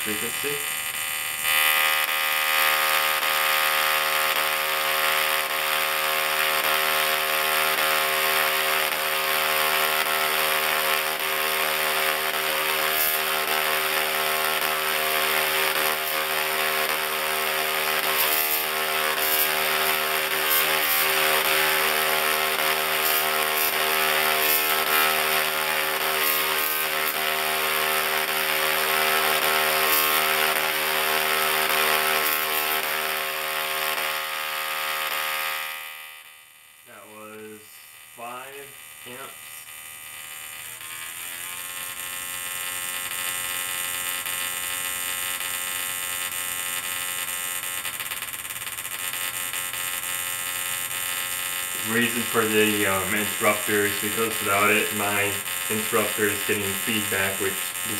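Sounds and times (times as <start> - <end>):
sparks crackling: 0.0 - 36.2, 36.8 - 57.9
tesla coil buzzing: 0.0 - 57.9.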